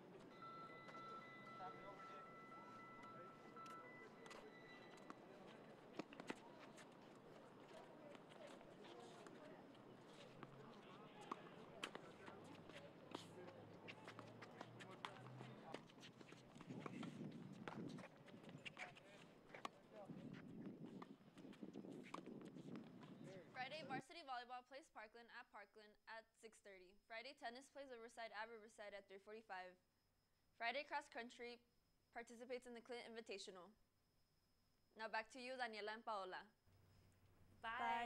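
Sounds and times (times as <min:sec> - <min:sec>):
faint high steady tone: 0:00.0 - 0:05.7, 0:37.6 - 0:38.0
faint outdoor court ambience: 0:00.0 - 0:38.0.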